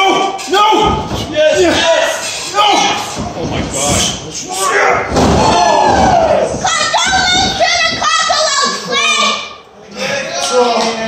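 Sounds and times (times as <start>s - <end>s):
people shouting: 0.0s - 3.2s, 4.5s - 9.4s
body slamming onto ring mat: 5.1s - 6.7s.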